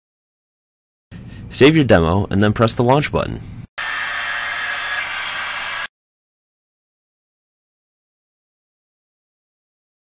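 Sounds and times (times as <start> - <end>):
faint high whines: 3.8 - 5.9.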